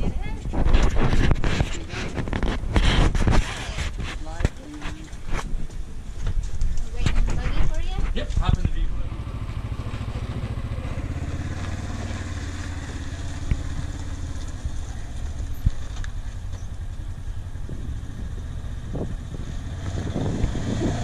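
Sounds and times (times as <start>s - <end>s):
vehicle engine running: 7.8s - 21.0s.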